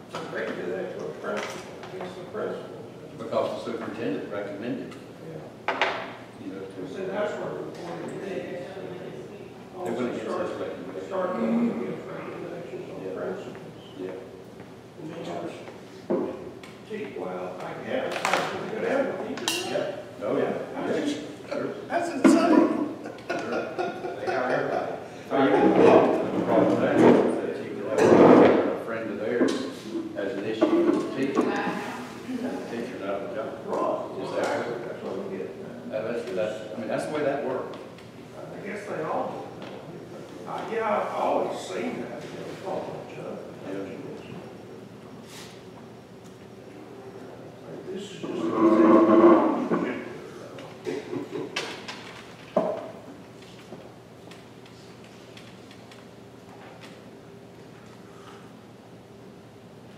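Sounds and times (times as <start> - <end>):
indistinct conversation: 0.0 - 59.6.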